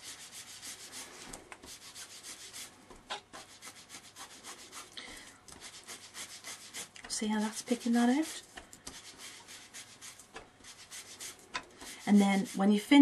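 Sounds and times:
foam scrubbing on card: 0:00.0 - 0:05.0, 0:05.6 - 0:13.0.

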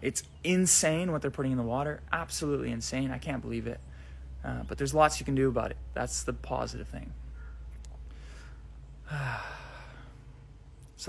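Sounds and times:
faint low rumble: 0:00.0 - 0:11.0
man sighing: 0:08.1 - 0:10.2.

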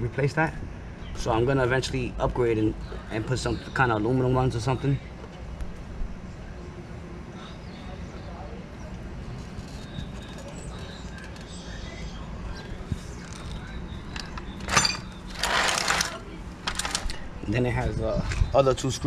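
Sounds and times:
scraping rustle: 0:14.7 - 0:17.2.

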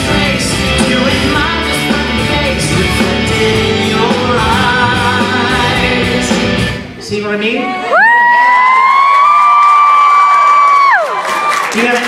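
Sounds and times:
person screaming woo: 0:07.8 - 0:11.2.

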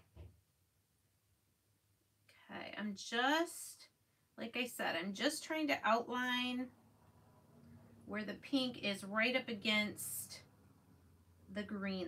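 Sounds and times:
woman speaking: 0:02.5 - 0:06.7, 0:08.1 - 0:10.5, 0:11.5 - 0:12.0.

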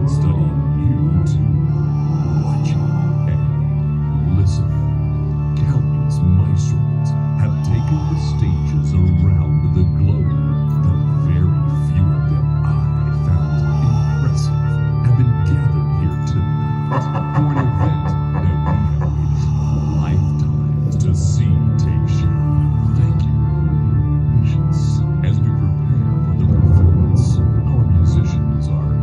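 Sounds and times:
low drone: 0:00.0 - 0:29.0
synthesizer organ chords: 0:00.0 - 0:29.0.

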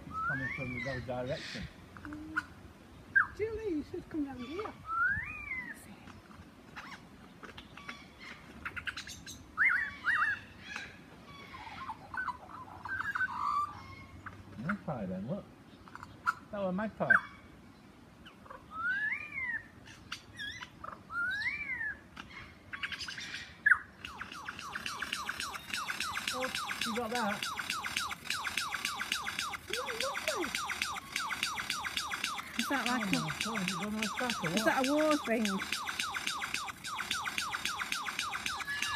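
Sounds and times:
lyrebird whistles: 0:00.0 - 0:01.6, 0:04.5 - 0:05.8, 0:18.7 - 0:22.0, 0:23.7 - 0:38.9
lyrebird sharp clicks: 0:24.0 - 0:38.9.

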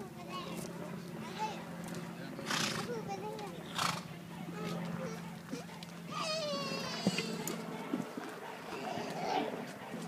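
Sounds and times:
steady low hum: 0:00.0 - 0:10.0
horse snorting: 0:02.4 - 0:02.9, 0:03.7 - 0:04.1.

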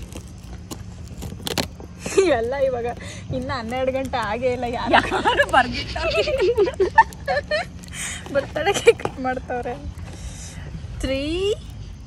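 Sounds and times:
tape crinkling: 0:00.0 - 0:10.0
steady low rumble: 0:00.0 - 0:12.0.

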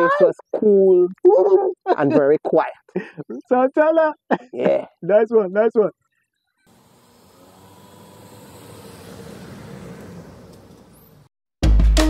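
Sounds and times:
car passing by: 0:06.7 - 0:11.3.

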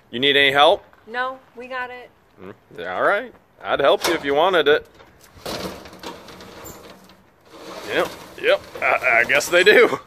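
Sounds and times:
metal roll-up door rattling: 0:03.9 - 0:04.5, 0:05.4 - 0:09.8.

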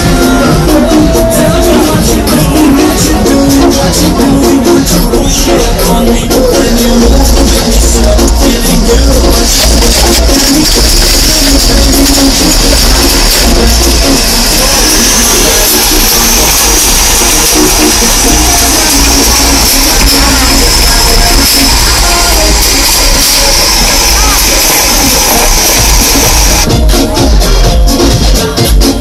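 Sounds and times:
loud music with deep bass: 0:00.0 - 0:29.0.

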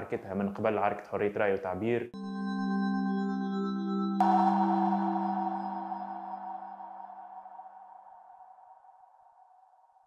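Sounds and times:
ringing bell-like tone: 0:02.2 - 0:09.6.

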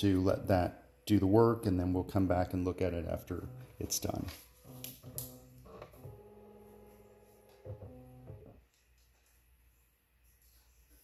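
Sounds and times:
printer mechanical tones: 0:03.0 - 0:08.6.

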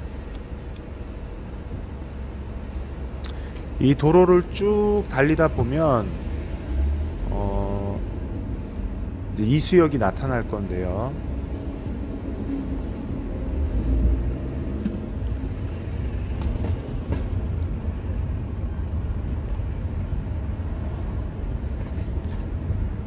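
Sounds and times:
car engine and road noise: 0:00.0 - 0:23.0.

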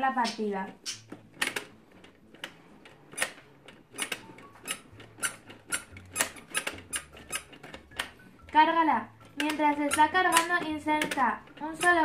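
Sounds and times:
sharp plastic clicks: 0:09.2 - 0:12.0.

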